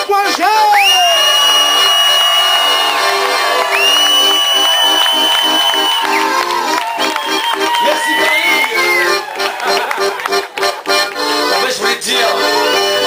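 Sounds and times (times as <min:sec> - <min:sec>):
accordion playing: 0:00.0 - 0:13.0
crowd cheering: 0:00.7 - 0:13.0
high-pitched whistles: 0:00.8 - 0:03.1, 0:03.7 - 0:06.4.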